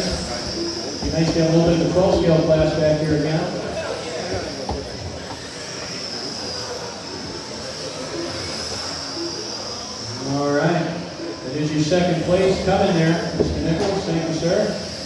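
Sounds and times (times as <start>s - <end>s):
man talking: 0.0s - 4.5s, 10.3s - 14.8s
electric rc cars whining: 0.0s - 15.0s.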